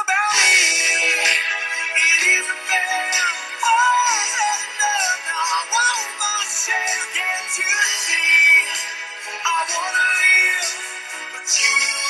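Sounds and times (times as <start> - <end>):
instrumental pop song: 0.0 - 12.0.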